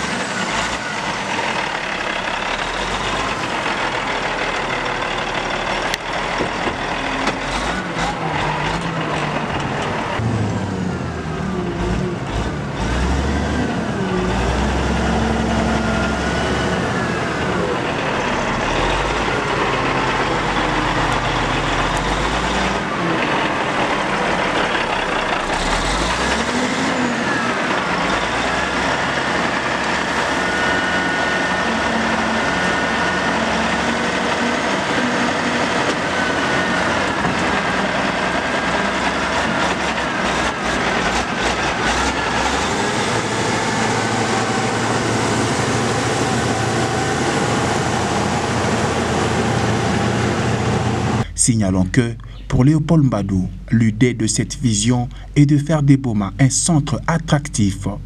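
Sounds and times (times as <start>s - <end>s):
diesel engine running under load: 0.0s - 58.0s.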